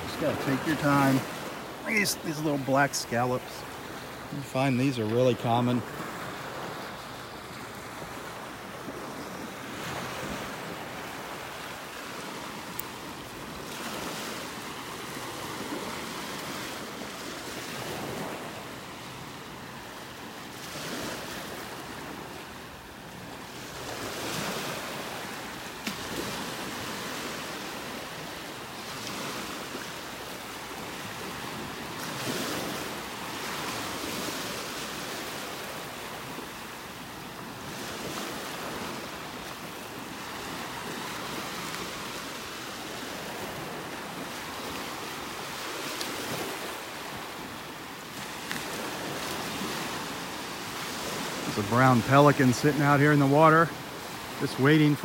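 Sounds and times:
small waves breaking on sand: 0.0 - 55.0.

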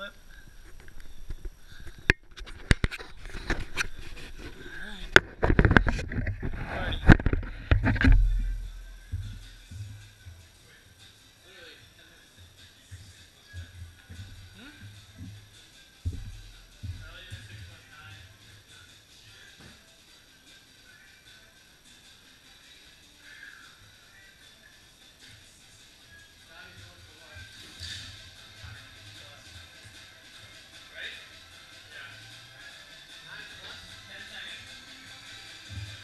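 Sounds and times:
faint background music: 0.0 - 36.0
camera handling knocks and rubbing: 2.1 - 8.3.

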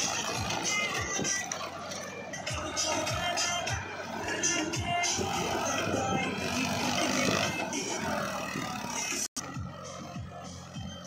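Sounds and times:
music: 0.0 - 11.0
tractor engine running: 0.0 - 11.0.

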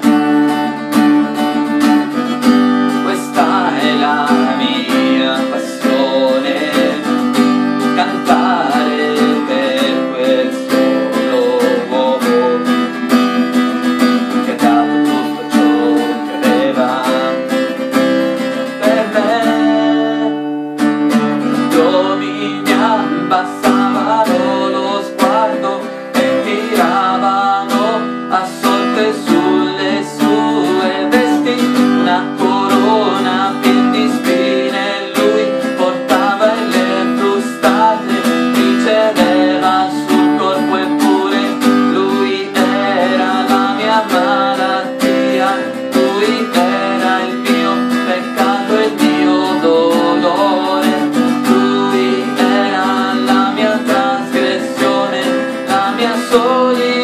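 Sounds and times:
acoustic guitar strumming: 0.0 - 57.0
man singing: 0.7 - 57.0.

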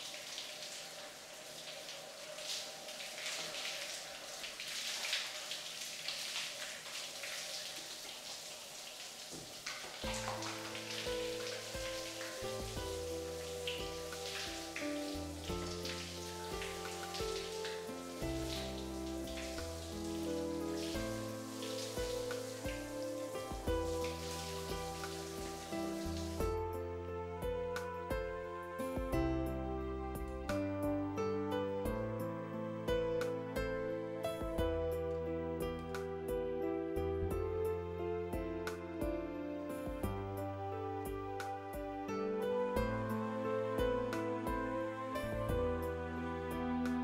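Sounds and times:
shower spraying water: 0.0 - 26.9
background music with held notes: 9.3 - 47.0.

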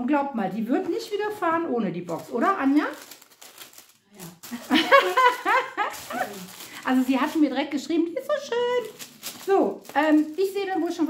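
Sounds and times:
woman laughing: 4.5 - 6.5.

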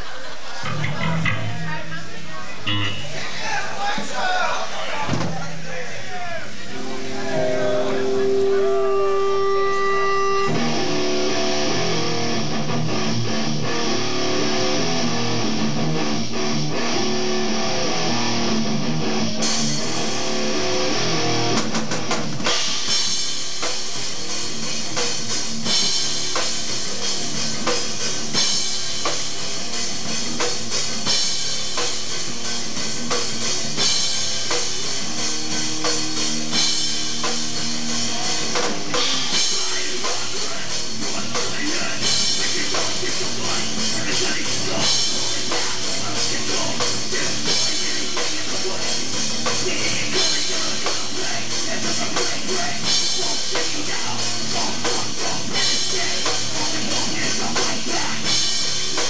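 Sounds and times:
drum kit: 0.0 - 59.0
electric guitar: 0.6 - 3.5, 6.7 - 59.0.

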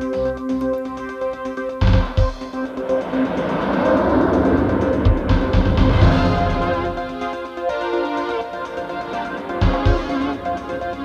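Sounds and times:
low drum thumps: 3.8 - 7.2.

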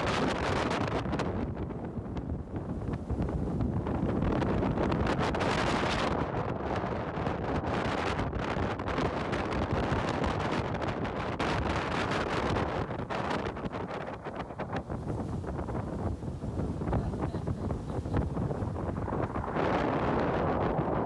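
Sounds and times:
water and boat underway: 0.0 - 21.0
wind buffeting microphone: 0.0 - 21.0.

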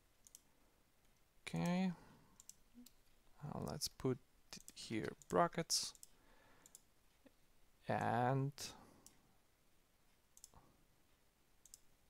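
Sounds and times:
computer keys clicking: 0.2 - 1.8, 2.4 - 3.9, 4.6 - 6.9, 10.4 - 10.6, 11.6 - 11.9
person speaking: 1.4 - 6.1, 7.2 - 9.1.

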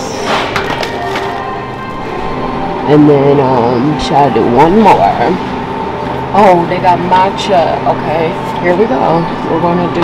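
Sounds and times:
grocery store ambience: 0.0 - 10.0.

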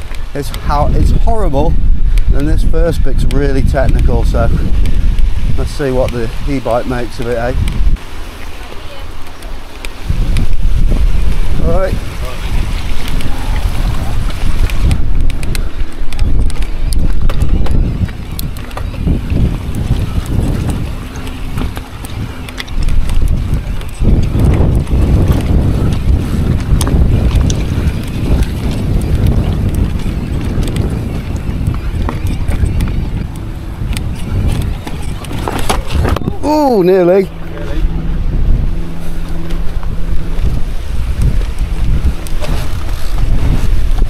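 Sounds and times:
wind buffeting microphone: 0.0 - 44.0
bike knocking and rattling: 9.2 - 36.5.

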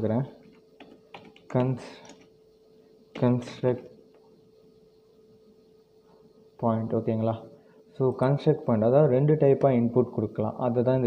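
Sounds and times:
keyboard keystrokes: 0.4 - 2.3.

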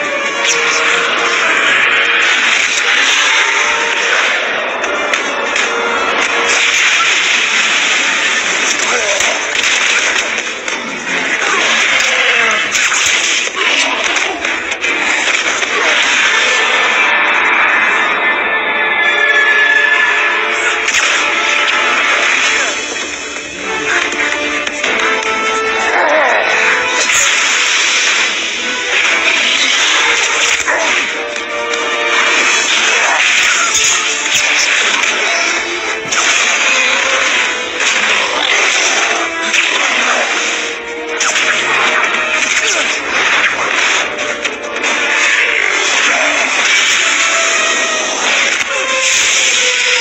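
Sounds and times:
loud action film music: 0.0 - 50.0
sound effects: 0.0 - 50.0.

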